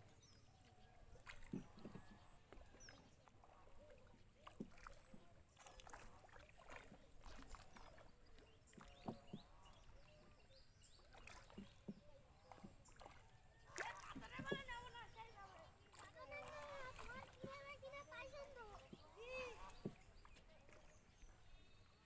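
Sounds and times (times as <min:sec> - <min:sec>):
water splashing against boat: 0:00.0 - 0:22.0.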